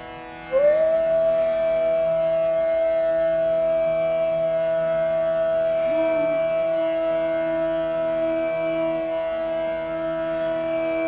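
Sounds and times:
flute holding long note: 0.0 - 11.0
steady drone: 0.0 - 11.0.

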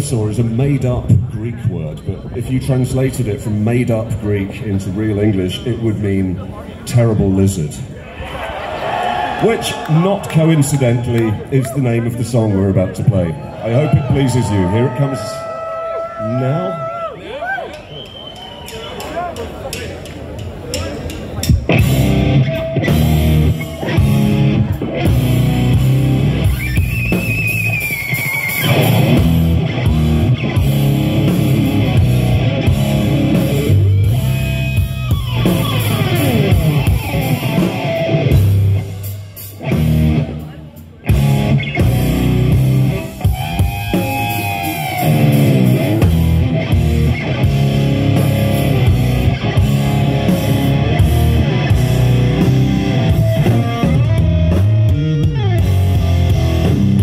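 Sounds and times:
drum kit: 18.6 - 57.0
bass guitar: 21.4 - 57.0
electric guitar with pitch bends: 21.7 - 57.0.

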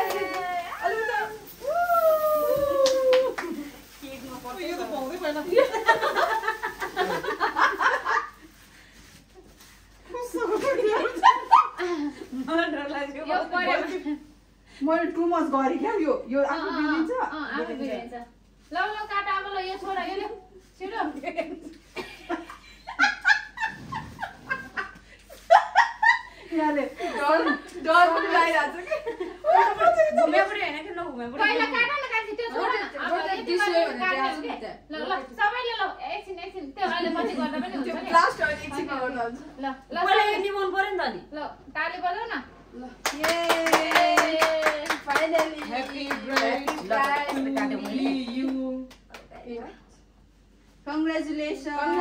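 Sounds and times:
women laughing and giggling: 5.5 - 8.6, 10.7 - 12.5, 21.3 - 30.3
women clapping hands: 43.0 - 49.4.

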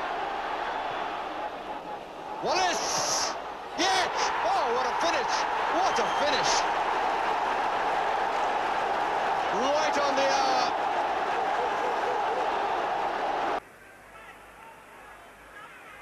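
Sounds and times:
shouts above crowd: 0.0 - 13.6
stadium crowd cheering: 0.0 - 13.6.

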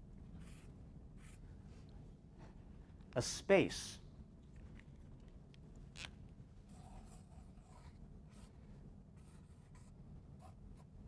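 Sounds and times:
scratchy writing strokes: 6.7 - 8.6, 9.2 - 11.0.

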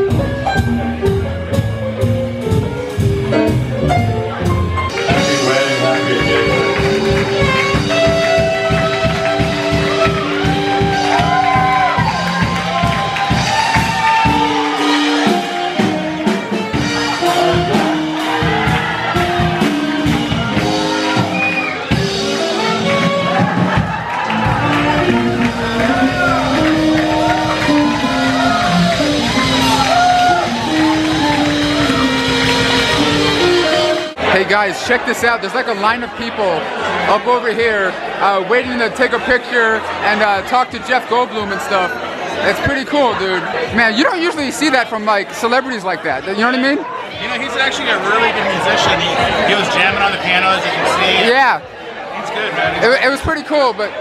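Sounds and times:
drum kit: 0.0 - 34.4
guitar: 0.0 - 34.4
piano: 0.0 - 34.4
upright bass: 0.0 - 34.4, 43.6 - 45.0
jazz band playing: 0.0 - 36.4, 37.1 - 51.3
voices: 37.5 - 51.6.

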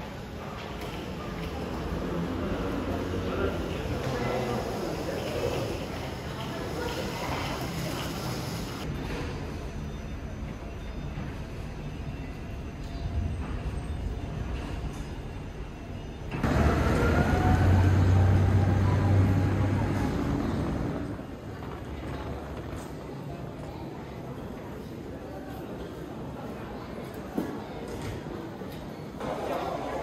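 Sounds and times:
terminal hall ambience: 0.0 - 30.0
low rumble of traffic: 15.3 - 22.5
large engine humming: 16.3 - 21.4.

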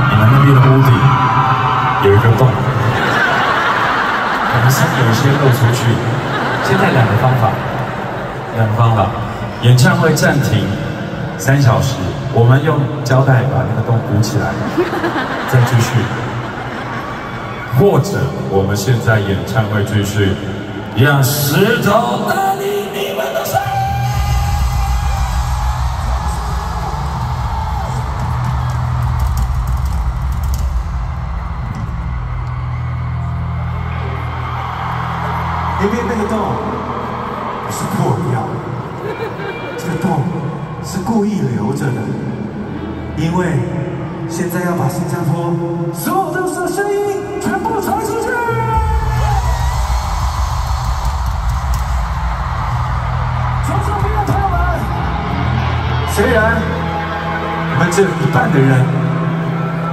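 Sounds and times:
man's voice: 0.0 - 3.2, 4.5 - 7.7, 8.5 - 16.2, 17.7 - 26.5, 43.0 - 49.7, 53.6 - 55.2, 56.0 - 59.9
large crowd noise: 0.0 - 59.9
live band over stadium speakers: 0.0 - 59.9.

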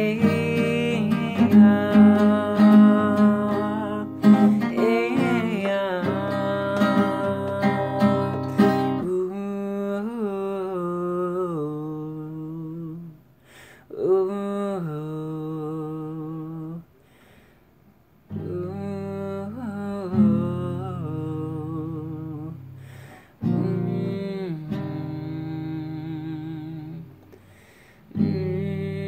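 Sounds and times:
acoustic guitar chord ringing: 0.0 - 9.5, 18.3 - 29.0
quick breath in: 13.4 - 13.9, 17.0 - 17.8, 22.8 - 23.4, 27.3 - 28.1.

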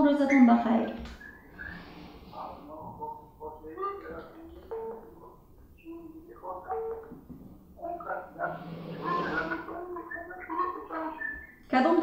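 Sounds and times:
breathy noise: 1.2 - 3.2, 7.4 - 10.2
person speaking over telephone: 2.3 - 12.0.

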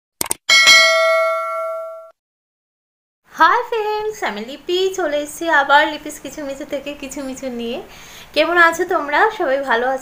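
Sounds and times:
bell ding: 0.5 - 2.1.

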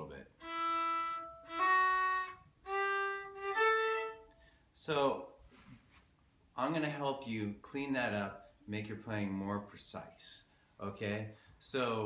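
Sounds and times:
bowed fiddle notes: 0.4 - 4.4.

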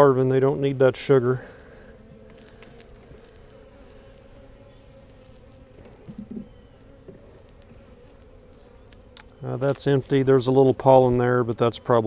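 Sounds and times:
honey bees buzzing: 0.0 - 12.0
faint clicks: 5.0 - 9.4.

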